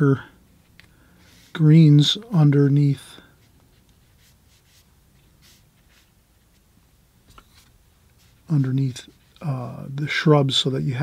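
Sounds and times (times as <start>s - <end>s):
brush strokes on paper: 1.0s - 9.8s.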